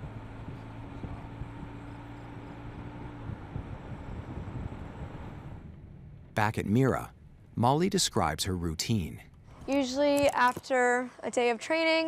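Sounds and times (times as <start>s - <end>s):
low engine hum: 0.0s - 9.8s
van road noise: 0.0s - 10.5s.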